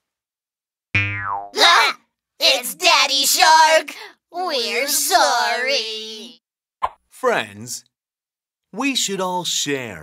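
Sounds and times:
cartoon boing sound effect: 0:01.0 - 0:01.8.

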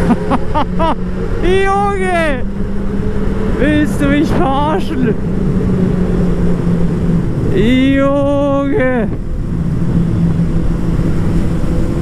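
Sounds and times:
motorcycle engine: 0:00.0 - 0:12.0
rushing wind noise: 0:00.0 - 0:12.0.

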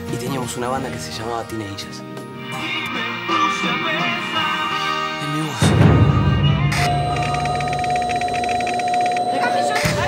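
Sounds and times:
steady beep tone: 0:06.1 - 0:10.0
pulsing digital chatter: 0:06.7 - 0:10.0.

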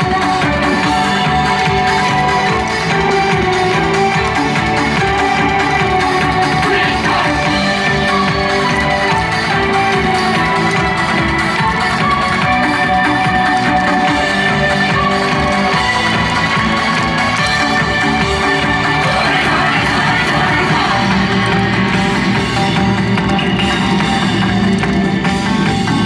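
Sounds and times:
dance music over loudspeakers: 0:00.0 - 0:26.0.

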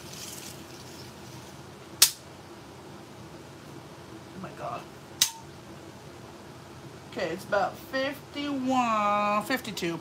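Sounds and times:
faint steady hum: 0:00.0 - 0:10.0
sharp click: 0:05.2 - 0:05.4.

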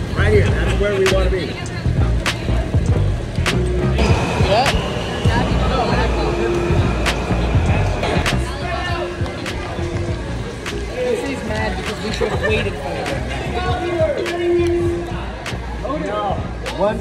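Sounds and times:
crowd chatter: 0:00.0 - 0:17.0
high steady whine: 0:03.8 - 0:09.0
train rumbling past: 0:04.0 - 0:08.9.

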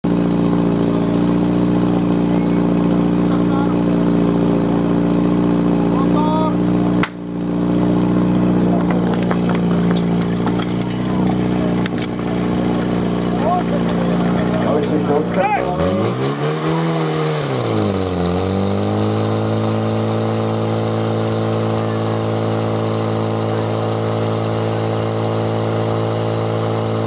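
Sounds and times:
pump engine running: 0:00.0 - 0:27.0
sharp crack: 0:07.0 - 0:07.3, 0:08.8 - 0:15.1
hoses clattering and knocking: 0:08.7 - 0:15.3.

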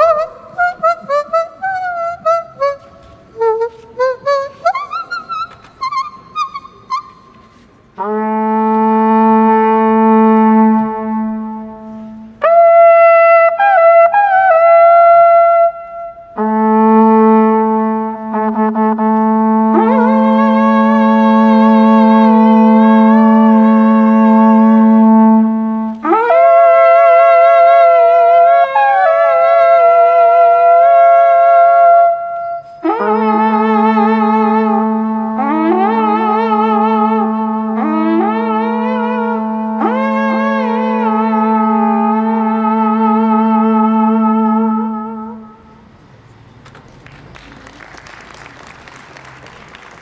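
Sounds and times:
hand whistle ornamented notes: 0:00.0 - 0:08.7, 0:18.3 - 0:45.6
wooden horn steady note: 0:00.0 - 0:46.0.

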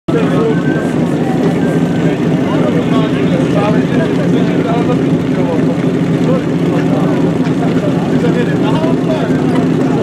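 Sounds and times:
fire pump engine running: 0:00.1 - 0:10.0
voices: 0:00.1 - 0:10.0.

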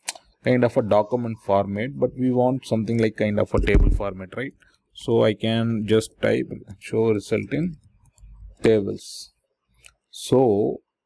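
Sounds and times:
man speaking: 0:00.5 - 0:07.8, 0:08.6 - 0:09.3, 0:10.2 - 0:10.8.

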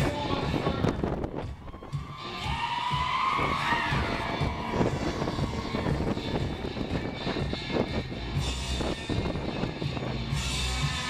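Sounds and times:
band music with low beat: 0:00.0 - 0:11.0
crowd screaming: 0:01.5 - 0:07.4, 0:10.4 - 0:11.0.

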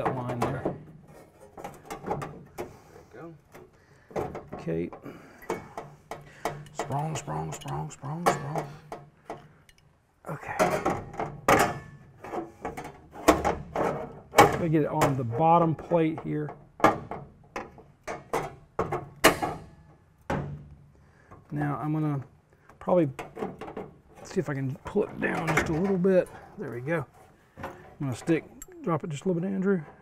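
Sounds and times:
metal plate and pry bar clanking: 0:00.0 - 0:02.8, 0:03.5 - 0:09.8, 0:10.5 - 0:20.7, 0:23.0 - 0:26.7
metallic knocks: 0:03.6 - 0:09.8.

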